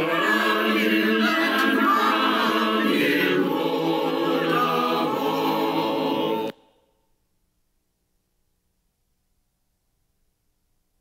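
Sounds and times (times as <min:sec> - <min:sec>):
choir singing in harmony: 0:00.0 - 0:06.8.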